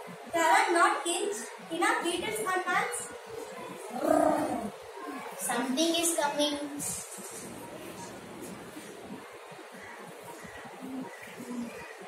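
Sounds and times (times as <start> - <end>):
short low coos: 3.9 - 4.7.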